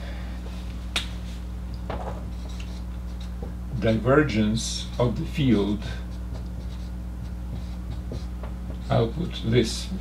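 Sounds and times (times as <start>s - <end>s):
low room hum: 0.0s - 10.0s
marker clicking on whiteboard: 6.3s - 9.0s.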